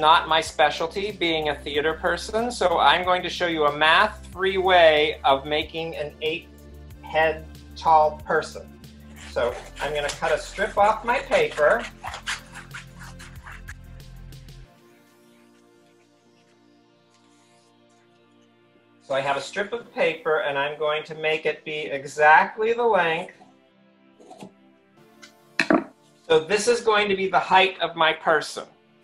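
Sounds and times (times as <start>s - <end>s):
soft background music: 0.0s - 29.0s
paper rustling: 9.1s - 13.8s
scissors snipping paper: 9.1s - 13.8s.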